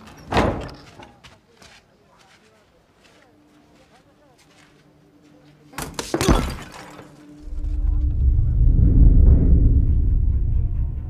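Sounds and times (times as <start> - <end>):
deep low film score rumble: 7.4 - 11.0.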